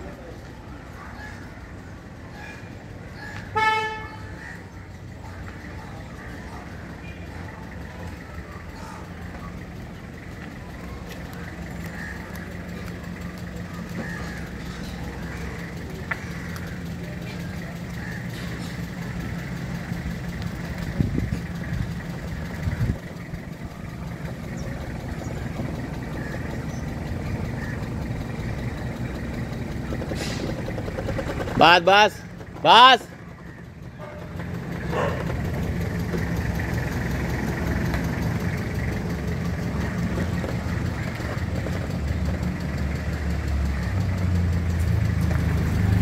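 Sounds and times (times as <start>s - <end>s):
diesel engine running: 0.0s - 46.0s.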